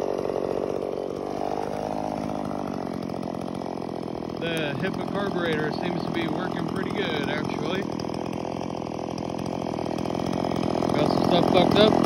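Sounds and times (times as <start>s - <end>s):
chainsaw idling: 0.0s - 12.0s.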